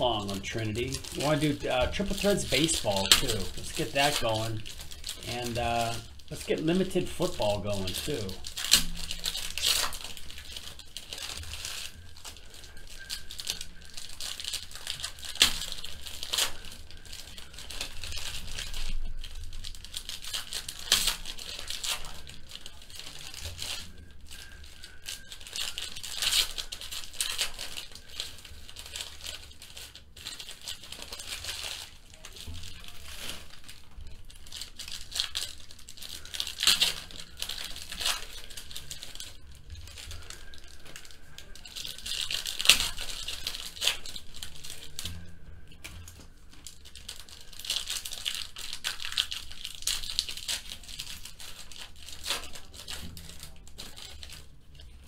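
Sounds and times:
foil wrappers crinkling: 0.0s - 55.0s
sharp foil rips: 0.0s - 55.0s.

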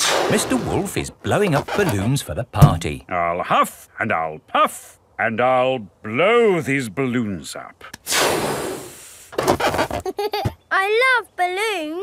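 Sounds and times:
cartoon balloon inflating: 0.0s - 1.0s, 8.0s - 10.1s.

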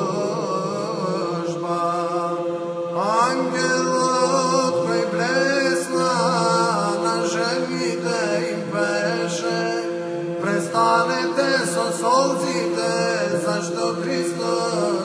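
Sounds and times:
man singing chant: 0.0s - 15.0s.

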